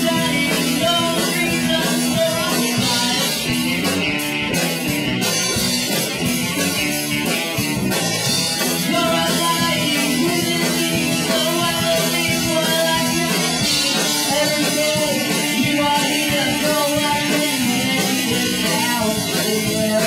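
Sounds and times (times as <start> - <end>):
person singing into microphone: 0.0 - 3.6, 8.7 - 20.0
drum kit: 0.0 - 20.0
rock band playing live: 0.0 - 20.0.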